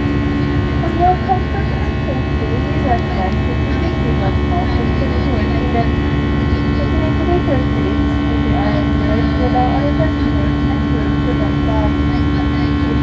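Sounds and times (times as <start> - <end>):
airliner engines droning: 0.0 - 13.0.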